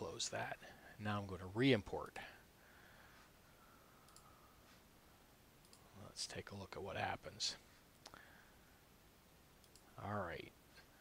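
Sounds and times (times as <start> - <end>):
faint computer mouse clicks: 4.0 - 4.3, 5.6 - 5.9, 9.6 - 9.9.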